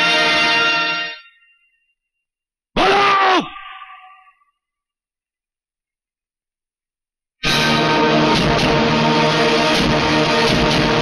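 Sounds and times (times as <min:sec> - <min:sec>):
man yelling: 0:02.8 - 0:04.4
echo of yell: 0:02.8 - 0:04.6.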